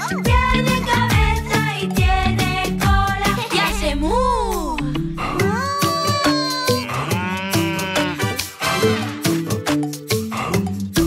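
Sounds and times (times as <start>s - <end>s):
children's song with latin beat: 0.0s - 11.0s
cartoon cow mooing: 5.5s - 8.4s.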